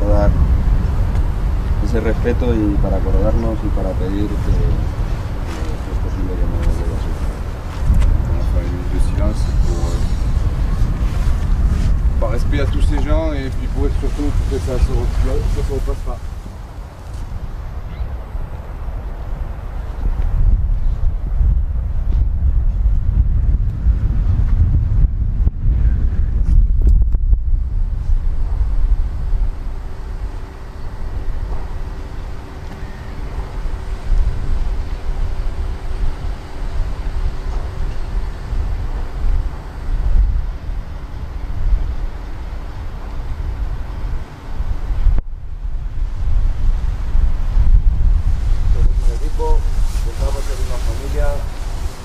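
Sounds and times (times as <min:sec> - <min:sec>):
faint steady hum: 0:00.0 - 0:52.0
wind buffeting microphone: 0:00.0 - 0:52.0.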